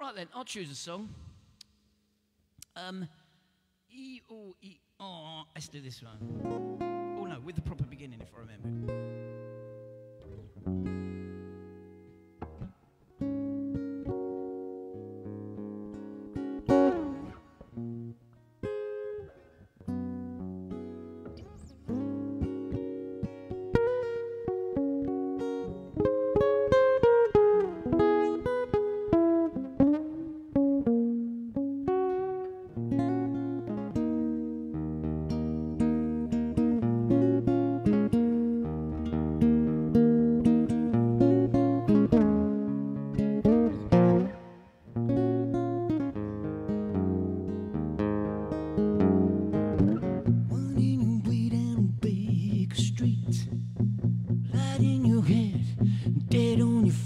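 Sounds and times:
acoustic guitar playing: 0:06.2 - 0:57.0.

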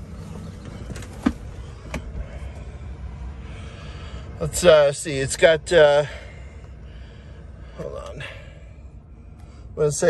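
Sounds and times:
pickup engine idling: 0:00.0 - 0:10.0.

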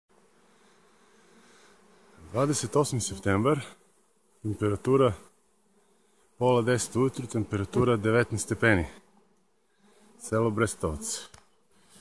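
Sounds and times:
honeybees buzzing: 0:00.1 - 0:12.0.

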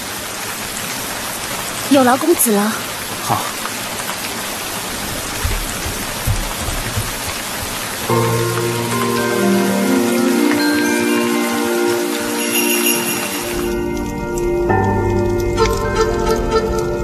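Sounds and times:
steady rain: 0:00.0 - 0:17.0
soft low thumps: 0:05.0 - 0:08.1
music with chime-like tones: 0:08.1 - 0:17.0.

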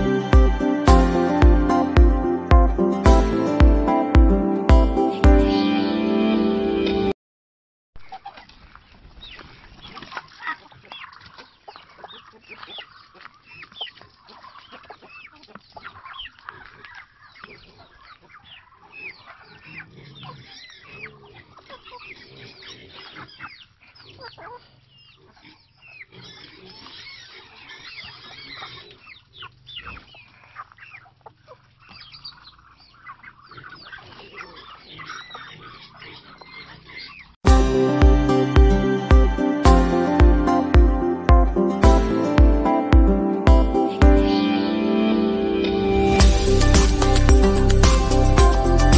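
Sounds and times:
music: 0:00.0 - 0:07.2, 0:37.4 - 0:48.9
chickens clucking: 0:08.0 - 0:44.5.

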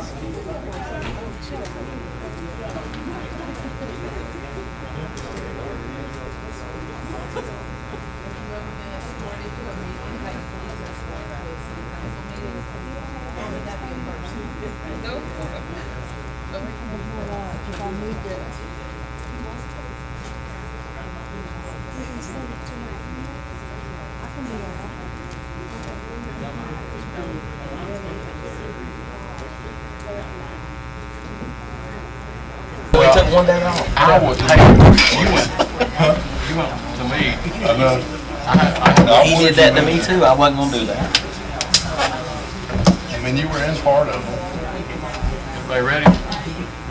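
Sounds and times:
murmur of people talking: 0:00.0 - 0:46.9
steady electrical buzz: 0:00.0 - 0:46.9.

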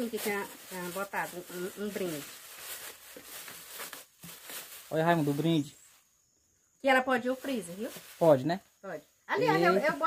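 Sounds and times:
plastic bag rustling and crinkling: 0:00.0 - 0:05.7, 0:07.3 - 0:08.6.

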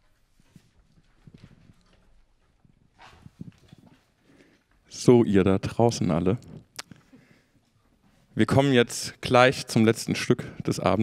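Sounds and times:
rustling of instruments and gear: 0:00.0 - 0:04.9.

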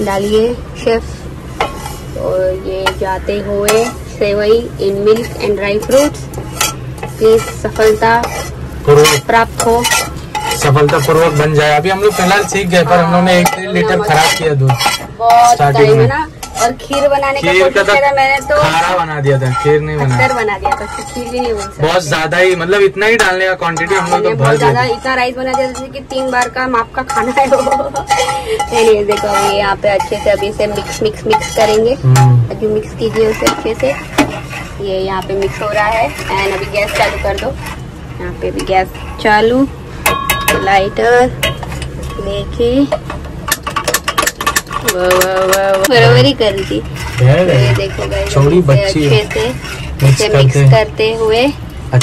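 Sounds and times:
utensil scraping metal pot: 0:01.5 - 0:52.0
person talking: 0:15.2 - 0:16.2, 0:24.0 - 0:25.0, 0:32.0 - 0:33.4, 0:44.9 - 0:50.7.

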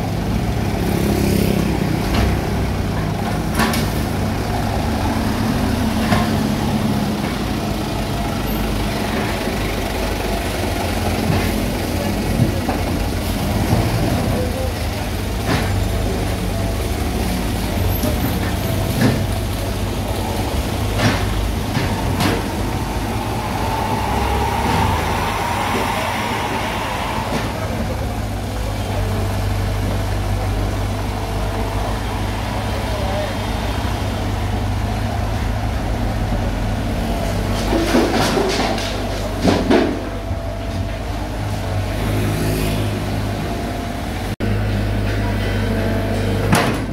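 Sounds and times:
excavator diesel engine running: 0:00.0 - 0:46.9.

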